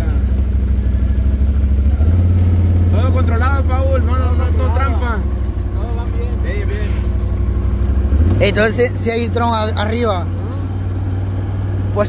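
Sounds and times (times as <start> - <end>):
engine droning: 0.0 - 12.0.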